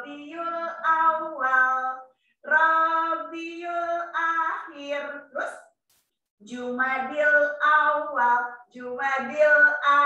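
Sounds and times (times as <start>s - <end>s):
woman singing a children's song: 0.0s - 5.6s, 6.4s - 10.0s.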